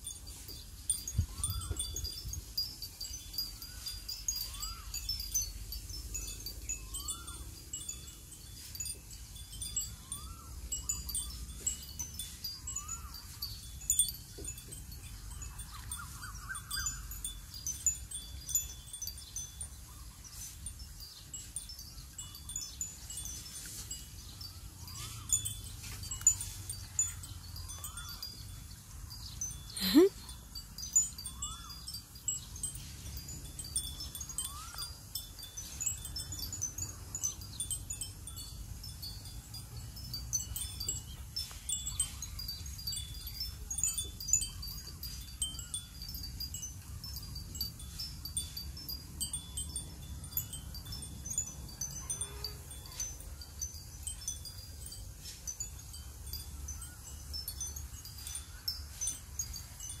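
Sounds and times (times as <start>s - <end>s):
chimes tinkling: 0.0s - 60.0s.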